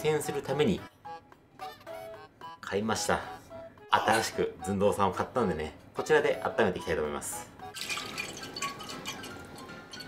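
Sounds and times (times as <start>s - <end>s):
background music: 0.0s - 10.0s
water filling metal pot: 7.7s - 10.0s.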